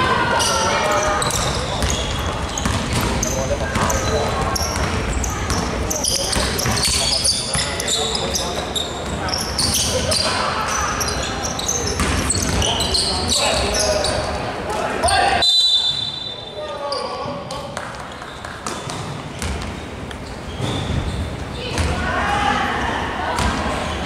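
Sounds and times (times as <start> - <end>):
players calling out: 0.0 - 17.3.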